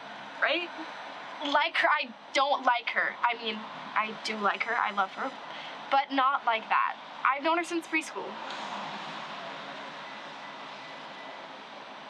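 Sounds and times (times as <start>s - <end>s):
passing road traffic: 0.0s - 12.0s.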